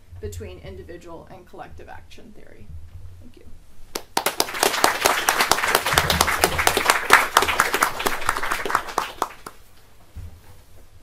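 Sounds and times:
audience applauding: 4.0s - 9.6s.

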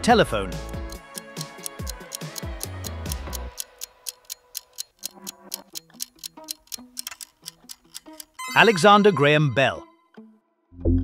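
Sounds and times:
background music: 0.0s - 11.0s
countdown timer ticking: 0.6s - 9.9s.

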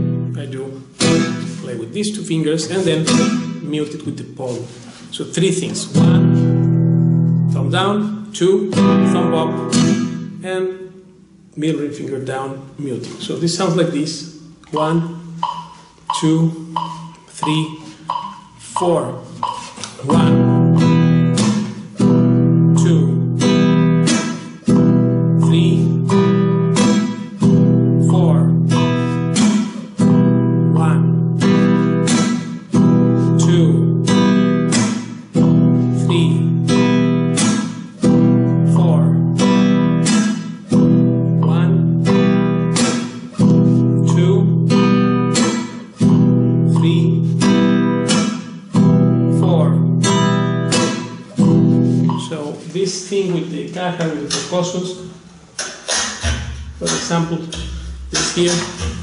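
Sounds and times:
flamenco guitar strumming: 0.0s - 11.6s, 13.0s - 59.0s.

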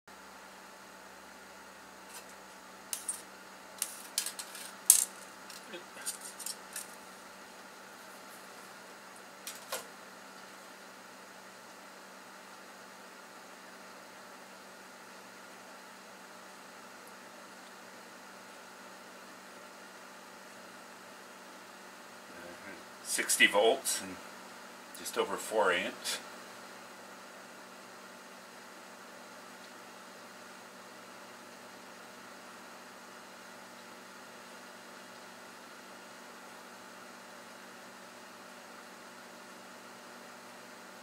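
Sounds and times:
steady low hum: 0.1s - 41.0s.

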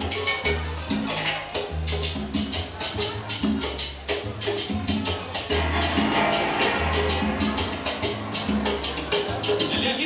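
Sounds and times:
salsa music over sound system: 0.0s - 10.0s.

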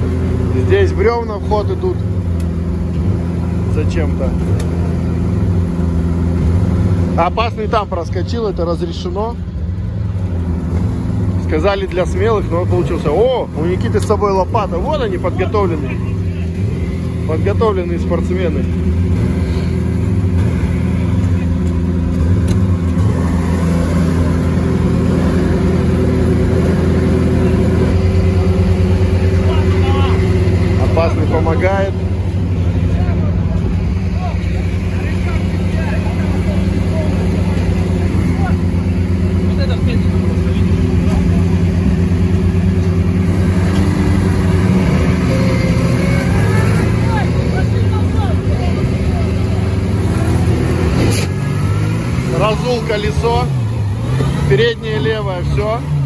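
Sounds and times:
car engine running: 0.0s - 56.0s
voices: 0.0s - 56.0s.

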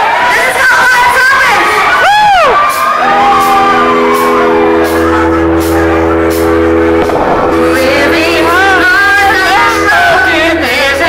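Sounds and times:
crowd cheering and whooping: 0.0s - 8.1s
low bass note: 3.0s - 11.0s.

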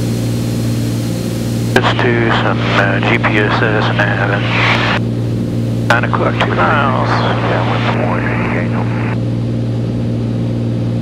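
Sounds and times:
propeller plane engine drone: 0.0s - 11.0s.

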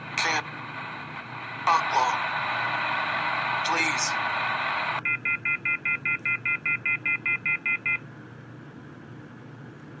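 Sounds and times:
rapid electronic phone beeping: 4.9s - 8.0s.

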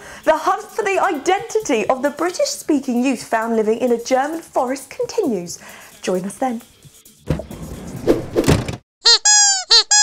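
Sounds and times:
short rushing noise: 7.5s - 8.8s
cartoon squeaks: 9.0s - 10.0s.

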